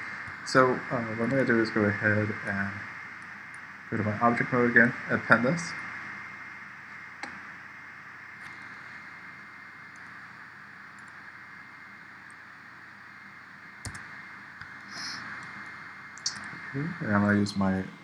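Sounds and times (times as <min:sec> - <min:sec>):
steady hiss: 0:00.0 - 0:18.0
computer mouse clicks: 0:09.9 - 0:10.2, 0:11.0 - 0:11.2, 0:13.8 - 0:16.6.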